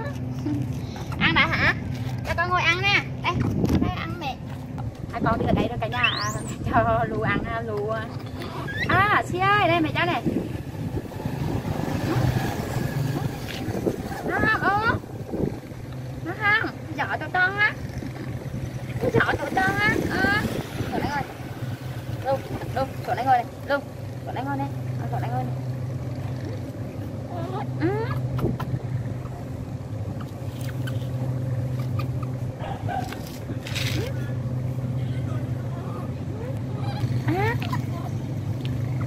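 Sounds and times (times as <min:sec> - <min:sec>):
baby monkey cooing: 0:30.2 - 0:33.1, 0:36.4 - 0:37.9.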